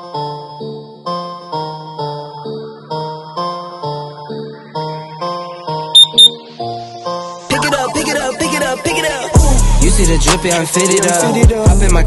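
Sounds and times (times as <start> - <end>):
short high electronic beeps: 6.0 - 6.4.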